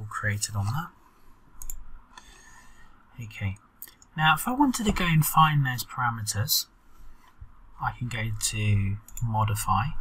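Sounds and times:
faint room noise: 0.0 - 10.0
computer mouse click: 1.6 - 2.3.

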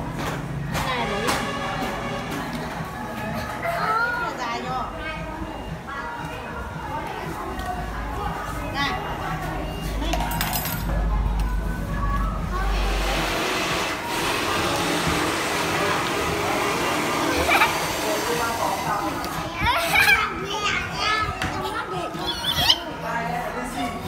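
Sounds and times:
children chattering and calling out: 0.9 - 24.0.

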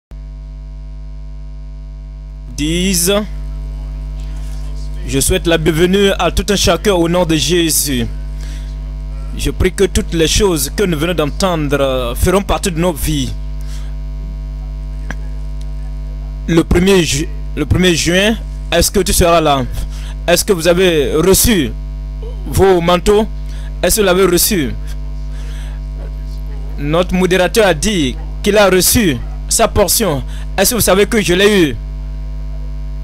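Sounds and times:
electrical mains hum: 0.1 - 33.0.

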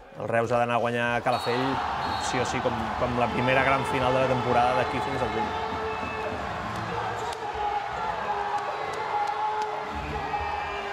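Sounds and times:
crowd cheering and shouting: 1.1 - 10.9.

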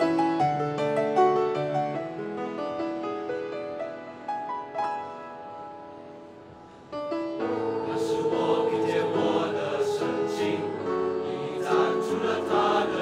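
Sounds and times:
quiet piano: 0.0 - 13.0
choir singing: 7.4 - 13.0.

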